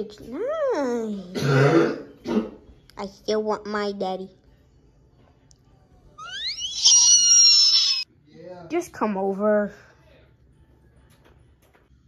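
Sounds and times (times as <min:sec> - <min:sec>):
shrill high-pitched squeal: 0:06.2 - 0:08.1.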